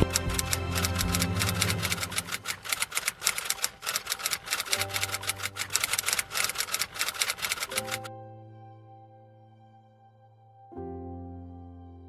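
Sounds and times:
typewriter key clicks: 0.0 - 8.1
background music: 0.0 - 12.0.

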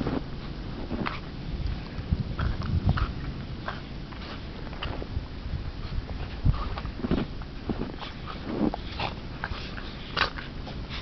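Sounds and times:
dogs play-fighting noises: 0.0 - 11.0.

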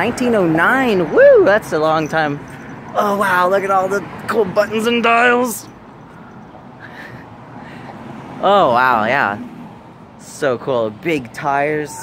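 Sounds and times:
low rumble of street traffic: 0.0 - 12.0.

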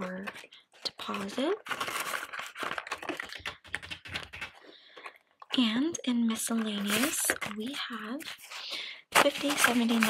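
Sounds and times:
banknotes rustling: 0.0 - 5.2, 6.5 - 10.0.

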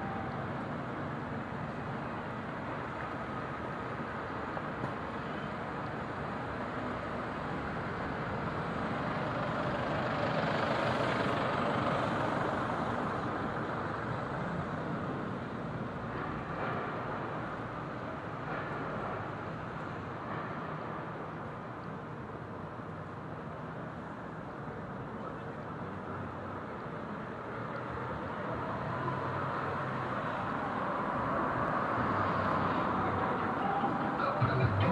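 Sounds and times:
city street traffic: 0.0 - 34.9
large vehicle passing: 32.0 - 34.9.

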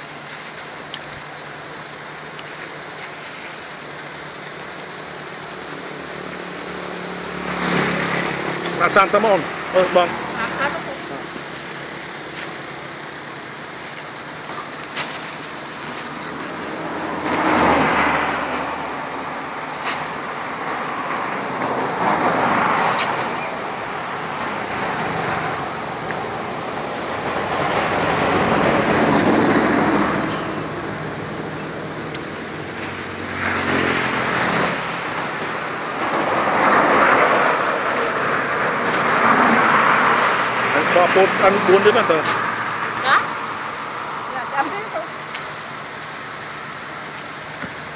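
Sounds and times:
plastic bags rustling: 0.0 - 40.3
road traffic passing: 0.0 - 47.9.

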